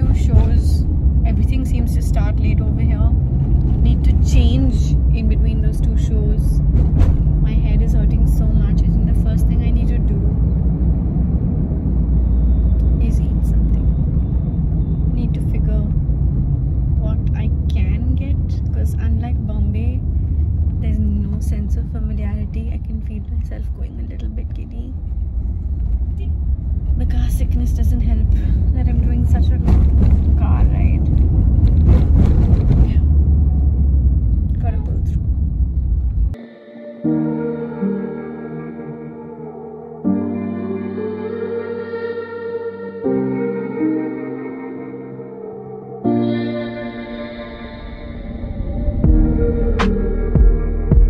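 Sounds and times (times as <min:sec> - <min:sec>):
woman talking: 0:00.0 - 0:03.2, 0:03.8 - 0:06.6, 0:07.4 - 0:10.4, 0:13.0 - 0:13.9, 0:15.2 - 0:16.0, 0:17.0 - 0:20.0, 0:20.8 - 0:25.0, 0:27.0 - 0:31.1, 0:34.5 - 0:35.2
car cabin rumble: 0:00.0 - 0:36.4.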